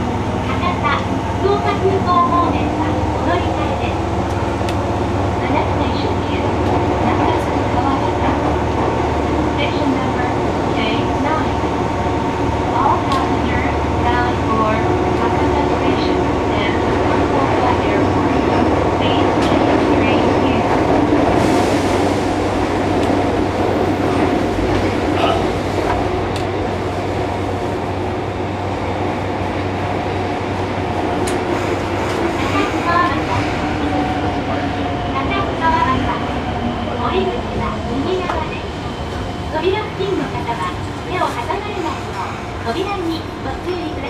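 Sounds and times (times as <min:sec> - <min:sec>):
voices: 0:00.0 - 0:21.0, 0:31.2 - 0:44.0
train wheels and motors rumbling: 0:00.0 - 0:44.0.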